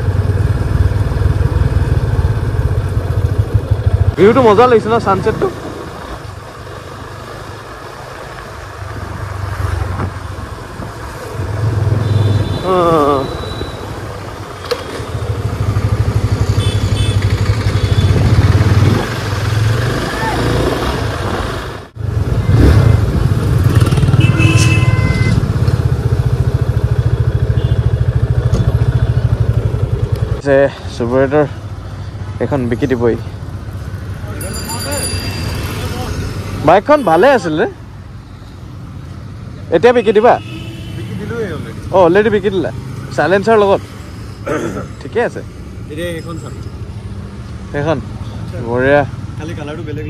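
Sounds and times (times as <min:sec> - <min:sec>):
road and wind noise: 0:00.0 - 0:50.0
motorcycle engine revving: 0:11.2 - 0:30.4.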